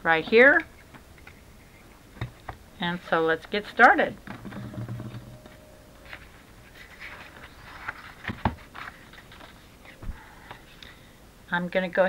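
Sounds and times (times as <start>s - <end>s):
paper rustling: 4.4s - 10.0s.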